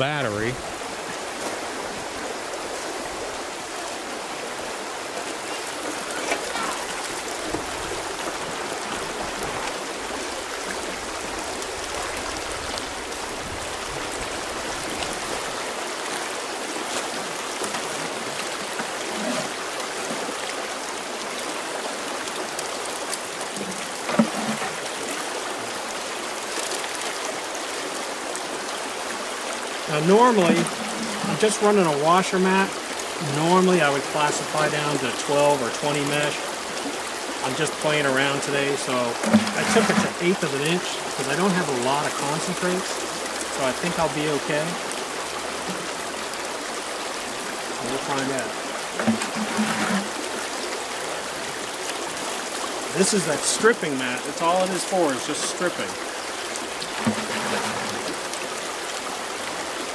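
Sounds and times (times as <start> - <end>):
water rushing down a sluice: 0.0 - 59.9
water pouring into plastic tub: 23.4 - 25.2, 29.8 - 33.4, 38.4 - 42.9, 47.8 - 50.8, 56.6 - 58.6.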